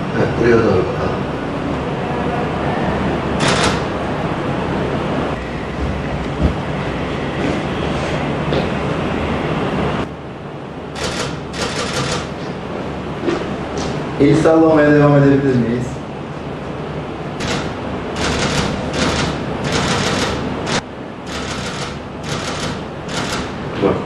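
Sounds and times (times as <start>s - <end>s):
room noise: 0.0s - 24.0s.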